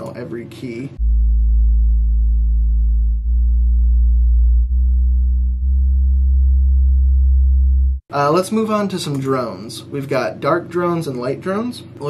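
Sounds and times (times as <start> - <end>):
low sub-bass synthesizer notes: 1.0 - 8.1.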